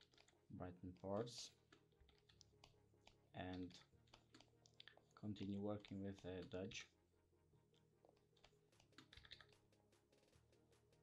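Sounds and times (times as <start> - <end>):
computer keyboard clicking: 0.0 - 0.4, 1.7 - 5.0, 8.4 - 9.6.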